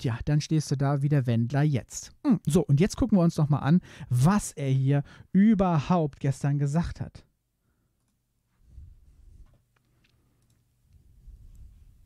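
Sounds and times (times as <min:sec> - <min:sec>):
computer mouse clicks: 0:09.8 - 0:10.6.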